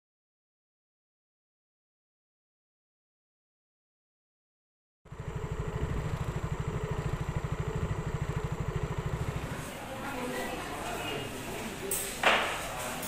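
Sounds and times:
small engine idling: 0:05.1 - 0:10.7.

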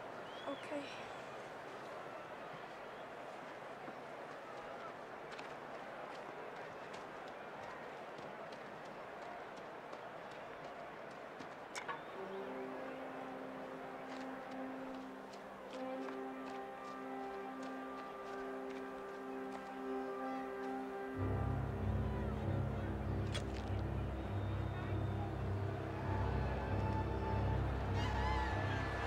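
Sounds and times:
stadium crowd murmur: 0:00.0 - 0:29.0
film score with held notes: 0:11.7 - 0:29.0.

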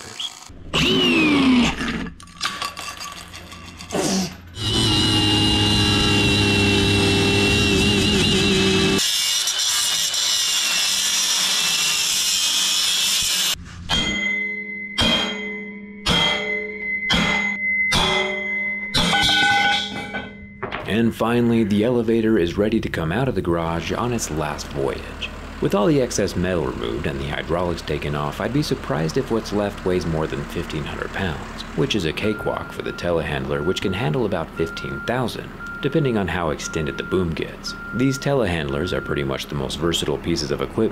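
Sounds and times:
angle grinder cutting steel: 0:04.5 - 0:13.6.

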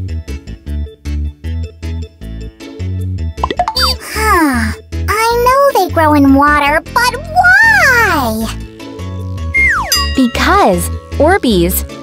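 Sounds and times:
bouncy children's music: 0:00.0 - 0:12.0
cartoon plop sound effects: 0:03.4 - 0:04.2.

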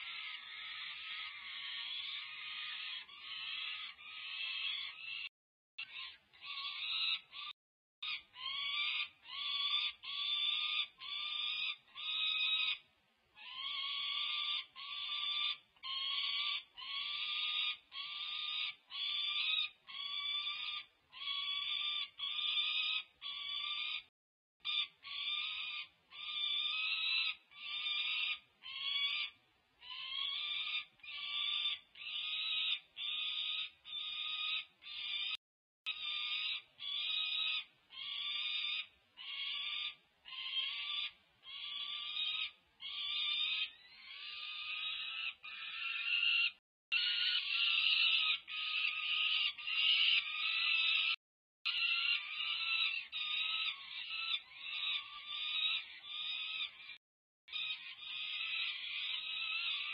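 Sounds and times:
falcon chick begging screams: 0:00.0 - 0:12.8, 0:13.4 - 0:59.9.

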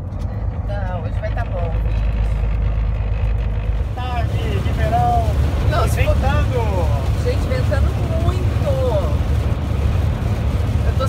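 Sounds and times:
road noise inside cab: 0:00.0 - 0:11.0
truck engine rumble: 0:00.0 - 0:11.0.

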